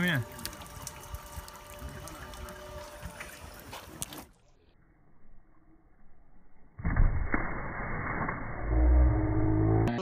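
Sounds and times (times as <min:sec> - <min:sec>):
water lapping against wooden dock: 0:00.0 - 0:04.6.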